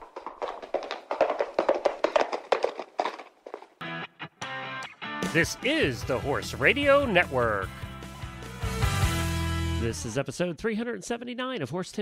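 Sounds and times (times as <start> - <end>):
hoofbeats of galloping horse: 0.0 - 3.8.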